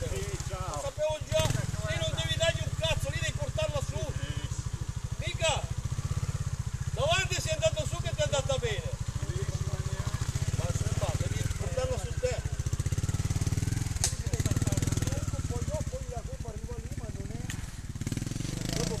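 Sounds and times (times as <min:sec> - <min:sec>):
motorcycle engine running at low revs: 0:00.0 - 0:19.0
sharp click: 0:14.0 - 0:14.2.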